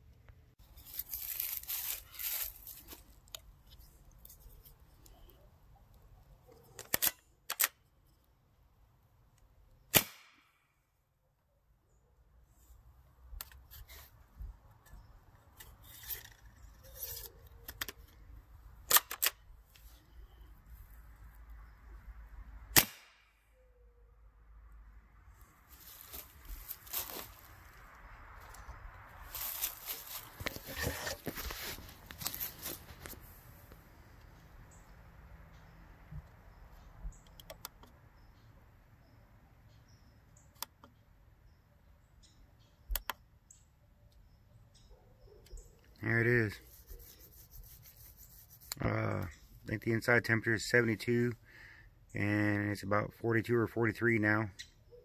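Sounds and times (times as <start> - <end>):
rustling and handling noise: 0.6 - 5.5, 25.4 - 34.4
air gun shots: 9.9 - 10.6, 22.7 - 23.3
small clicks: 37.2 - 38.0, 42.9 - 43.2.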